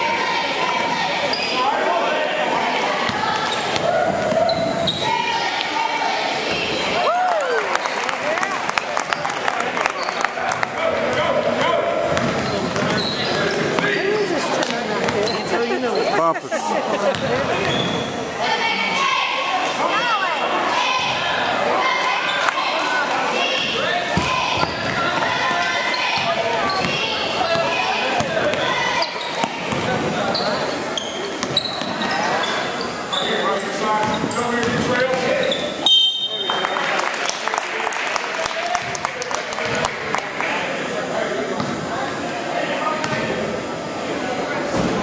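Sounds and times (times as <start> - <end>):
voices and shouts echoing: 0.0 - 45.0
sneakers squeaking: 0.7 - 1.8, 2.8 - 5.8, 9.1 - 16.2, 17.0 - 18.3, 20.8 - 36.5, 41.6 - 41.9
basketball bouncing on wooden court: 12.0 - 13.8, 17.1 - 18.0, 24.2 - 25.4, 26.2 - 28.7, 29.4 - 30.1, 34.0 - 35.3.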